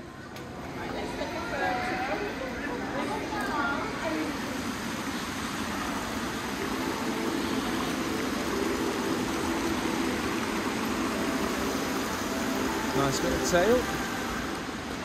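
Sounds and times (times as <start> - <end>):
fountain water splashing into basin: 3.1 - 15.0.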